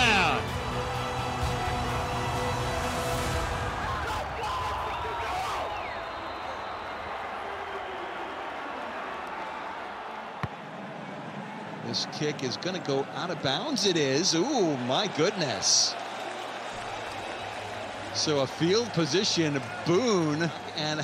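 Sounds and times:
crowd shouts: 0.0s - 21.0s
stadium crowd cheering: 0.0s - 21.0s.

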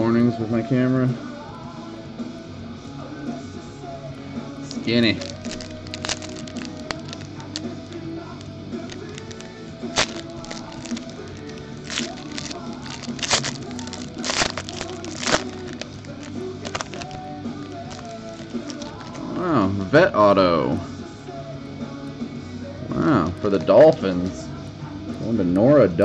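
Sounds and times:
background music: 0.0s - 26.0s
card wrappers crackling: 4.7s - 19.5s.

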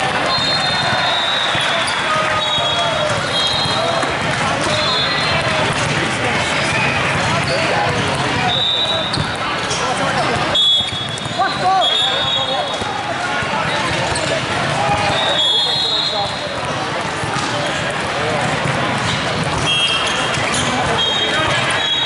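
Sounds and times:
chatter of many people: 0.0s - 22.0s
volleyballs hit and bouncing: 0.0s - 22.0s.

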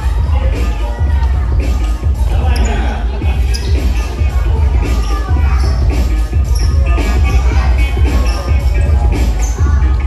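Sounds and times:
crowd voices: 0.0s - 10.0s
dance music with heavy bass: 0.0s - 10.0s.

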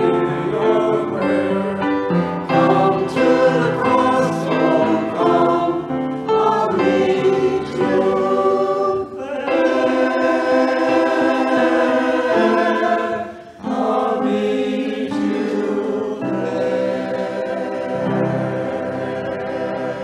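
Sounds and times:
mixed choir singing a hymn: 0.0s - 20.0s
piano accompaniment: 0.0s - 20.0s.

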